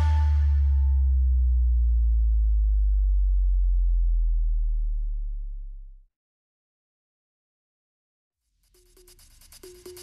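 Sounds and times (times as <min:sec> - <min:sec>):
higher electronic tones: 0:00.0 - 0:01.0
deep sub-bass hum: 0:00.0 - 0:06.1.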